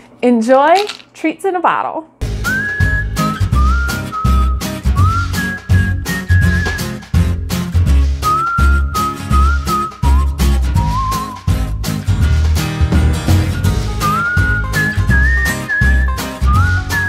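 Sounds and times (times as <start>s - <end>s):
whistled melody: 2.2s - 7.4s, 8.0s - 12.2s, 12.9s - 17.0s
steady drum beat: 2.2s - 15.4s
bouncing bass line: 2.2s - 17.0s.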